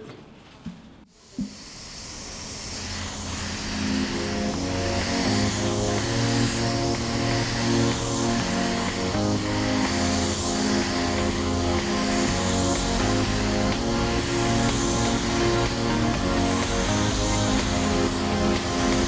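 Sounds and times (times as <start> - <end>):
music with chords and deep bass: 2.9 - 19.0.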